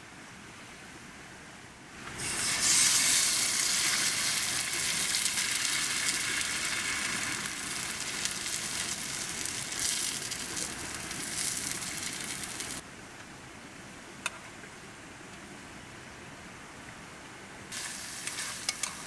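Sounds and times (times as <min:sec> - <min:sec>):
egg sizzling in oil: 0:02.2 - 0:12.8, 0:17.7 - 0:19.0.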